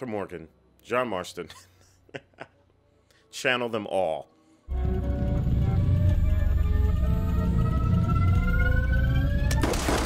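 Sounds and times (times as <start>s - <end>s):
tense film score: 0.0s - 10.0s.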